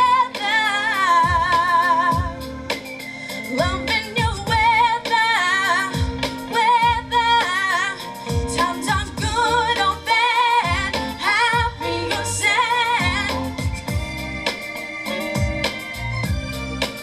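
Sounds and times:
woman singing into a microphone: 0.0s - 16.0s
backing music: 0.0s - 17.0s
deep kick drum: 13.0s - 14.2s, 16.2s - 16.5s.

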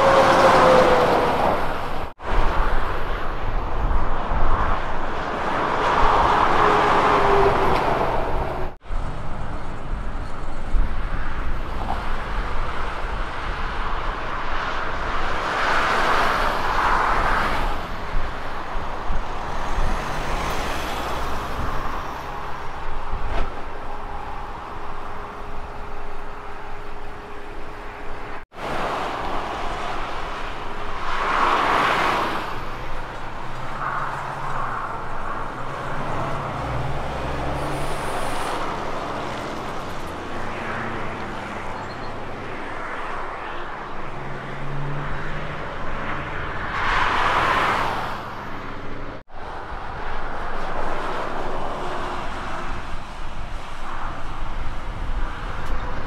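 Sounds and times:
road traffic: 0.0s - 56.0s.

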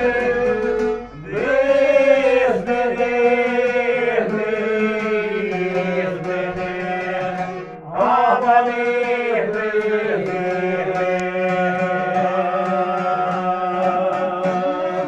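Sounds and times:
long-necked lute: 0.0s - 15.0s
men singing together: 0.0s - 15.0s.

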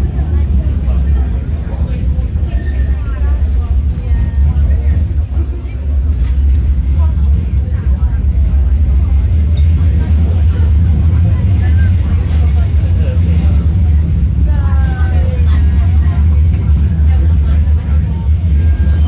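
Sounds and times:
passengers talking faintly: 0.0s - 19.0s
tram rumbling: 0.0s - 19.0s.

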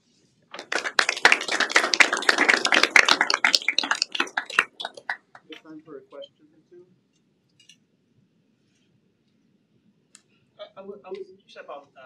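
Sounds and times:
audience applauding: 0.5s - 5.6s.

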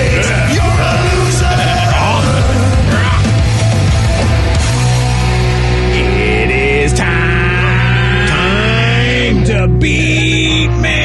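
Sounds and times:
hard rock music: 0.0s - 11.0s.

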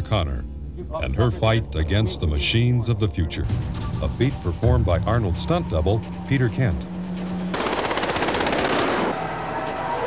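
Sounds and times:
rapid automatic gunfire: 7.5s - 9.2s.

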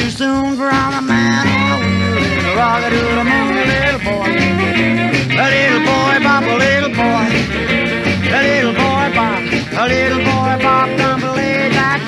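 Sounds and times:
bass line: 0.0s - 12.0s
steady drums: 0.0s - 12.0s
lead instrument sliding phrases: 1.0s - 12.0s.

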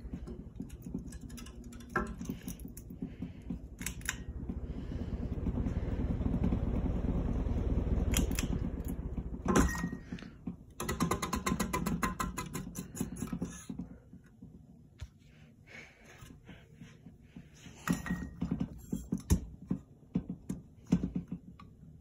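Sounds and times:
ceiling fan humming and rattling: 0.0s - 22.0s.

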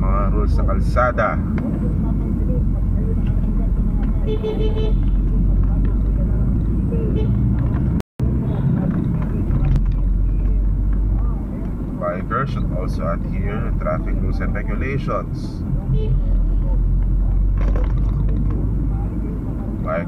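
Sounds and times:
car engine and tyres rumbling: 0.0s - 20.0s
car horn toot: 4.2s - 5.2s, 7.0s - 7.5s, 15.9s - 16.4s.

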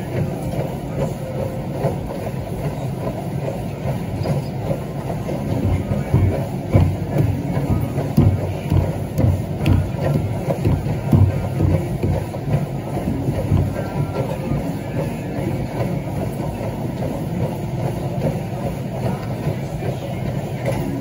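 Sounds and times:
footfalls on treadmill belt: 0.0s - 21.0s
treadmill rumble: 0.0s - 21.0s.

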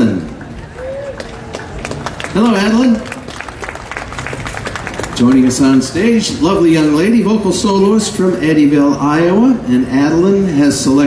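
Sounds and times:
man's amplified voice: 0.0s - 0.4s, 2.2s - 3.2s, 5.1s - 11.0s
audience clapping: 0.3s - 6.2s.

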